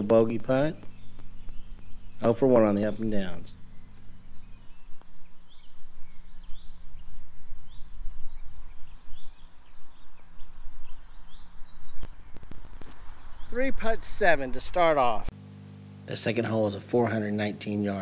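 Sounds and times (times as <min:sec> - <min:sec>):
low uneven rumble: 0:00.0 - 0:15.3
small birds chirping: 0:00.0 - 0:15.3.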